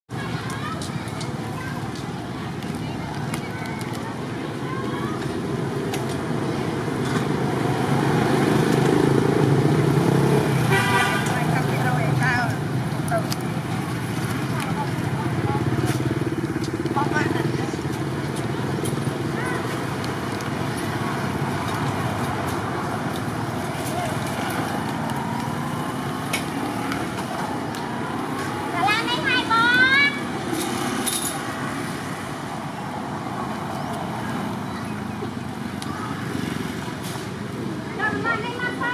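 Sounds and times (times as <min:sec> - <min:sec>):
road traffic: 0:00.1 - 0:38.9.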